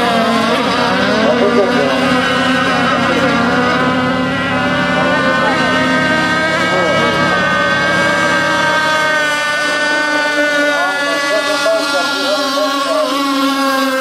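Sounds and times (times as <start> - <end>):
model boat engines high-pitched whine: 0.0 - 14.0.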